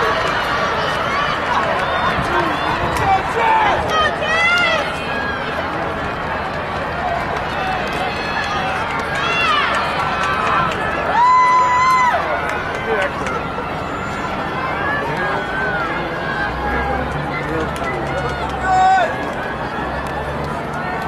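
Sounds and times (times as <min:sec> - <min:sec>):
people shouting cheers: 0:00.0 - 0:06.0, 0:06.9 - 0:21.0
crowd murmur: 0:00.0 - 0:21.0
spectators chattering: 0:00.0 - 0:21.0.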